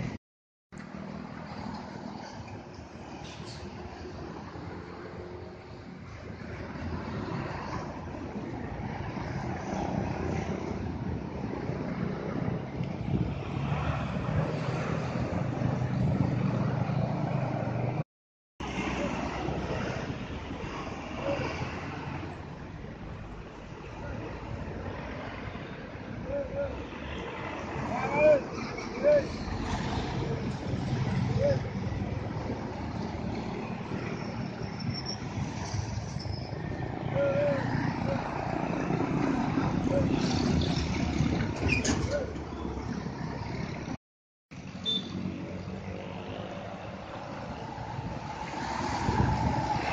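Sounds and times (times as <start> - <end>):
buses and trucks passing: 0.8 - 49.9
diesel bus engine rumbling: 27.6 - 44.0.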